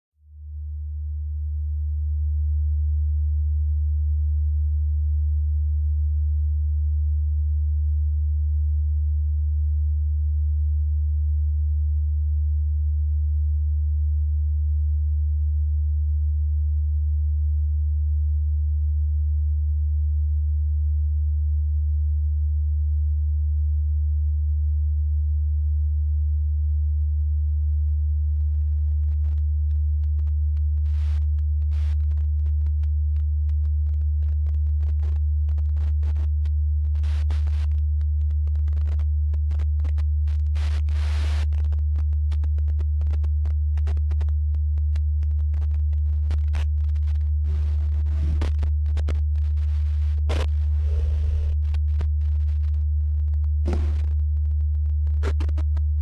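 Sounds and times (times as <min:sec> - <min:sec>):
low electronic sine tone: 0:00.2 - 0:56.0.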